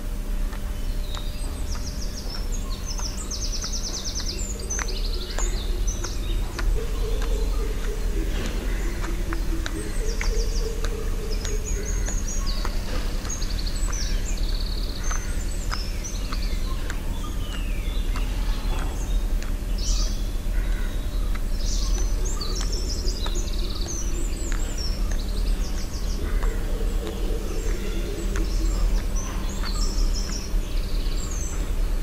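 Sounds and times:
birds chirping and trilling: 0.0 - 32.0
steady low rumble: 0.0 - 32.0
faint clicks: 0.5 - 31.7.

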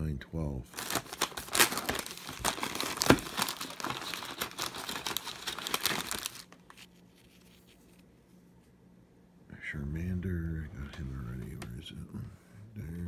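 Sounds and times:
plastic wrapper crinkling: 0.7 - 8.0.

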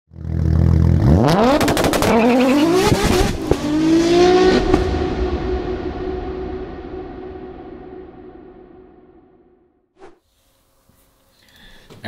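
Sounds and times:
exhaust crackles: 0.1 - 7.2
car engine revving: 0.1 - 9.2.

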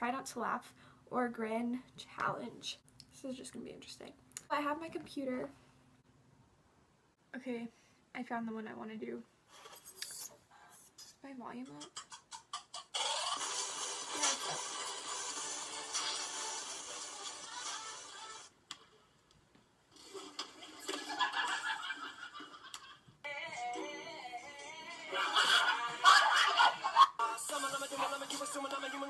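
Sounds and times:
music through computer speakers: 13.0 - 18.5, 23.3 - 29.0.

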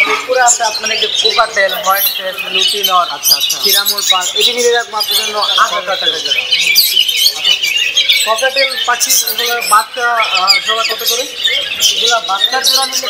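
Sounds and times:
parakeets chattering and squawking: 0.0 - 13.0.

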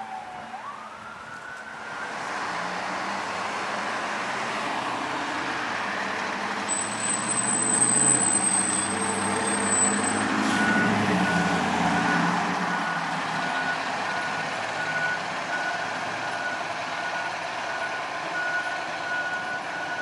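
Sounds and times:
diesel engine rumbling: 0.0 - 20.0.

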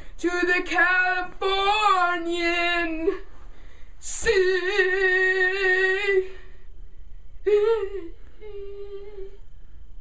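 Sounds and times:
faint low room hum: 0.0 - 10.0
boy humming: 7.5 - 9.4.

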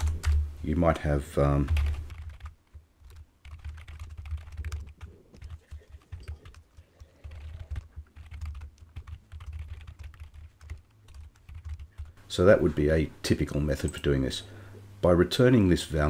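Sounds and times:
computer keyboard typing: 0.0 - 0.4, 1.6 - 12.2.

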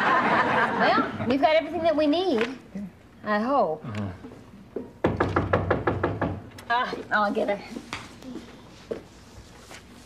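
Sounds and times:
knocking on door: 5.0 - 6.5.

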